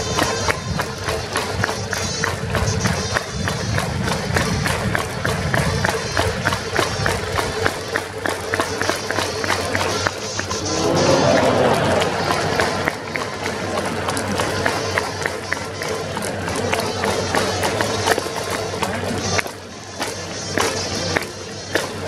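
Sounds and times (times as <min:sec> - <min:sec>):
rapid rhythmic clapping: 0:00.0 - 0:22.0
stadium crowd cheering: 0:00.0 - 0:22.0
cheering band with trumpets: 0:10.5 - 0:13.2.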